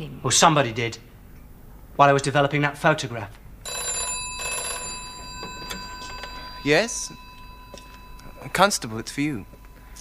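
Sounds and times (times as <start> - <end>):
telephone bell ringing: 3.7 - 10.0.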